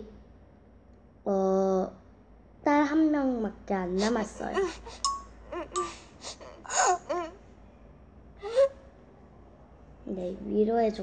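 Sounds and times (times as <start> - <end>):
girl breathy vocal sounds: 4.0 - 7.3, 8.4 - 8.7.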